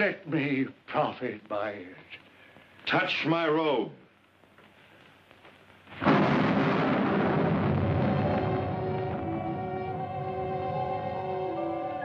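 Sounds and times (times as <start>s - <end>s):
orchestral music: 7.7s - 12.0s.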